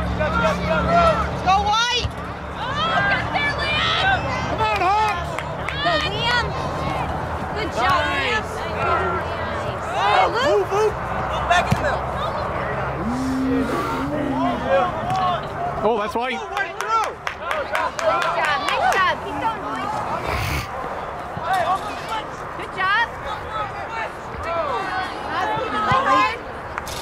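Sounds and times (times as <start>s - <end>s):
players and spectators shouting: 12.8s - 16.6s.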